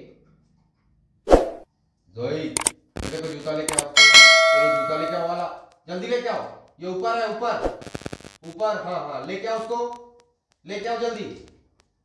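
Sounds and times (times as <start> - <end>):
sharp clicks: 3.7 - 4.0
bright bell ding: 3.9 - 5.4.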